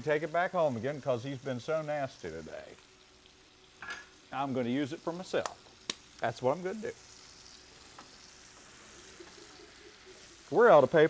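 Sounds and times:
breaded food sizzling in a pan: 0.0s - 11.0s.

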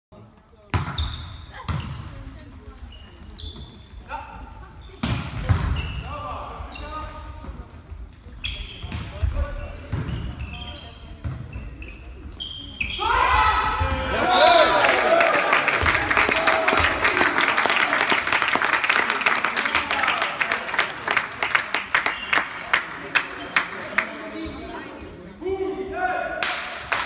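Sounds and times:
shoe squeaks on court floor: 0.9s - 4.1s, 5.7s - 13.1s
crowd shouting and cheering: 13.0s - 18.4s.

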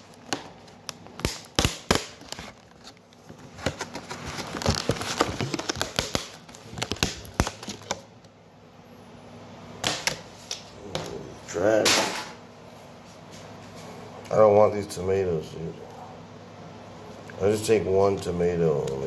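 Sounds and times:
plastic container crackling: 3.5s - 8.0s.

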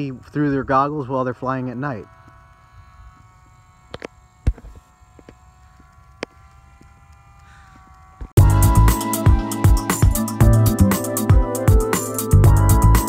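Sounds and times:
model airplane motor whining: 0.0s - 13.0s.

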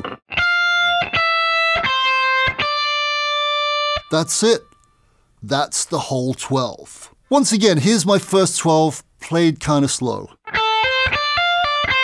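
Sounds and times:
electric guitar single notes: 0.0s - 4.9s, 10.5s - 12.0s.

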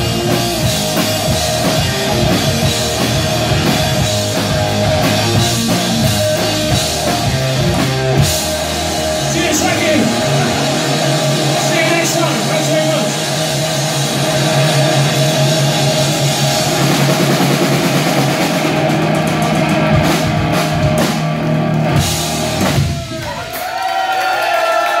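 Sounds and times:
drums and cymbals hitting hard: 0.0s - 23.9s
rock band playing loud: 0.0s - 23.9s
wavering sliding guitar notes: 1.9s - 16.7s.

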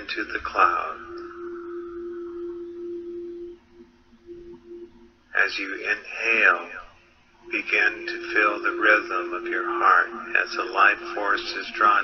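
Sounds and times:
low steady pure tone: 0.0s - 12.0s.

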